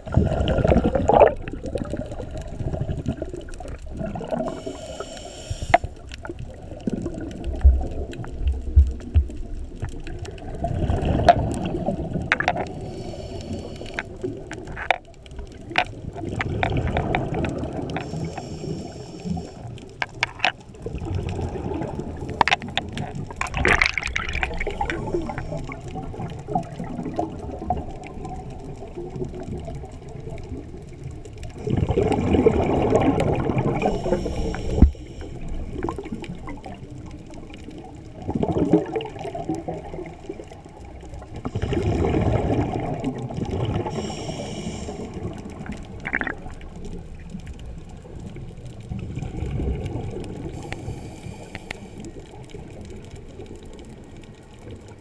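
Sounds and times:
bubbly gurgling exhalations: 0:00.0 - 0:53.7
diver breathing through regulator: 0:04.4 - 0:06.1, 0:12.7 - 0:14.2, 0:18.0 - 0:19.7, 0:33.7 - 0:35.9, 0:43.8 - 0:45.4, 0:50.5 - 0:52.2.

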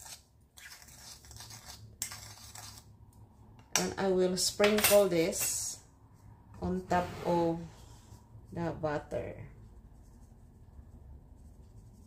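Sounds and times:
spoon scraping in a bowl: 0:00.0 - 0:02.9.

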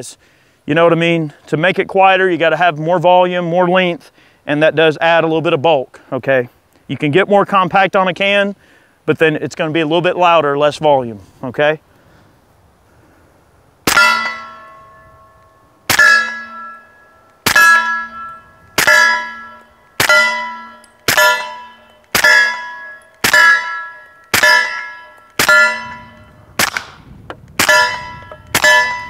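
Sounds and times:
steel target clanging: 0:13.9 - 0:26.9, 0:27.6 - 0:29.0
suppressed pistol shots: 0:20.0 - 0:20.4, 0:23.2 - 0:25.6, 0:26.6 - 0:28.8.

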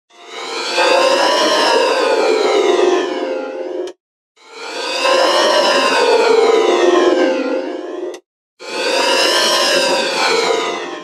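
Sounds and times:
distorted siren-like jingle tones: 0:00.6 - 0:03.3, 0:04.7 - 0:06.8.

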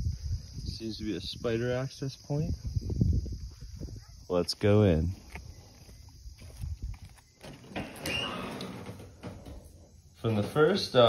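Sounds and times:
footsteps: 0:05.1 - 0:10.9
metal door scraping: 0:07.4 - 0:10.9.

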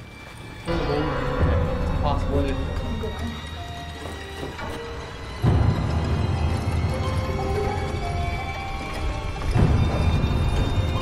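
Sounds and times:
tense horror film score: 0:00.0 - 0:11.0.

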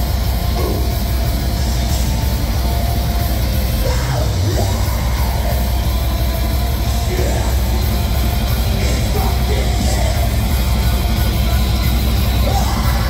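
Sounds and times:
heavy metal band playing: 0:00.0 - 0:13.0
shouted vocals: 0:03.7 - 0:06.1, 0:08.7 - 0:10.8, 0:12.2 - 0:13.0.

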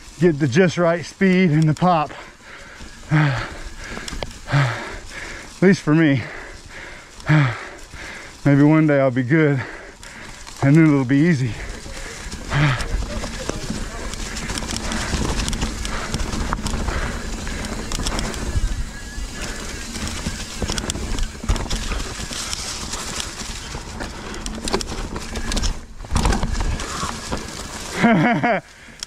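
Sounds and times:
bike tyres rolling over rock: 0:00.0 - 0:29.0
bike knocks and rattles: 0:11.2 - 0:28.6
person laughing: 0:27.9 - 0:28.7.

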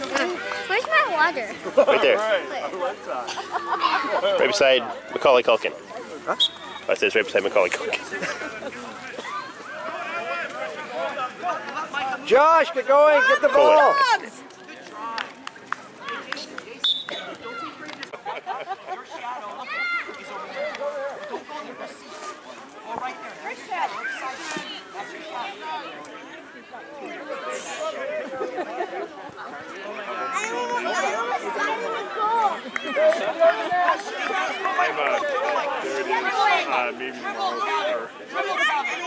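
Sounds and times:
chatter of several voices: 0:00.0 - 0:39.0.

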